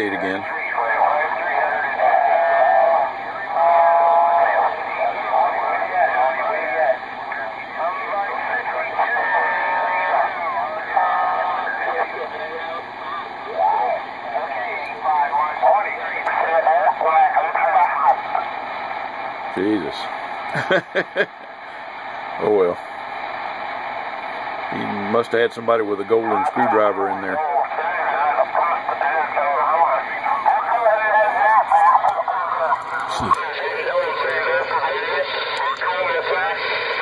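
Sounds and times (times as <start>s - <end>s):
voices over radio speaker: 0.0s - 37.0s.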